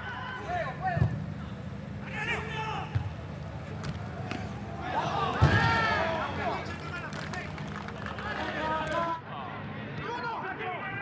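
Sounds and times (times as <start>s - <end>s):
voices calling: 0.0s - 9.2s
stadium ambience: 0.0s - 11.0s.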